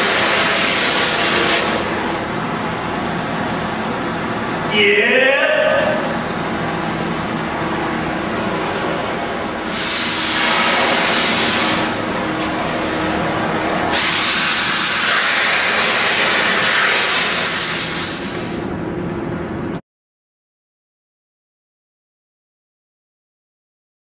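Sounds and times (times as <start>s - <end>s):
gas torch hissing: 9.6s - 12.2s, 13.9s - 18.7s.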